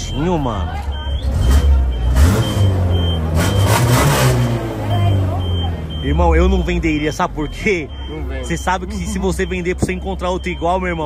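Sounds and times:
car engine idling: 0.0s - 11.0s
throttle blips: 5.1s - 11.0s.

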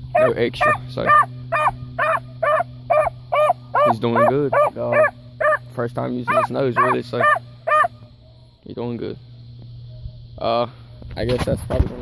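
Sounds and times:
puppy barking: 0.1s - 5.6s, 6.3s - 7.9s.

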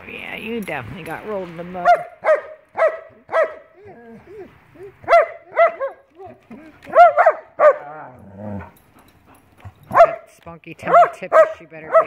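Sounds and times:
dogs barking: 1.8s - 8.7s, 9.6s - 12.0s
dog yips: 1.9s - 7.9s.

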